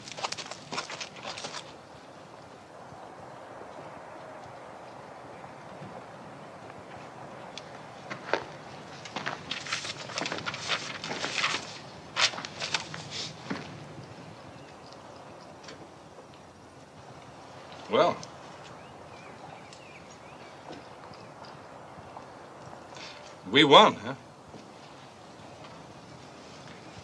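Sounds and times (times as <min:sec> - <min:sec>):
paper pages rustling: 0:09.1 - 0:13.4.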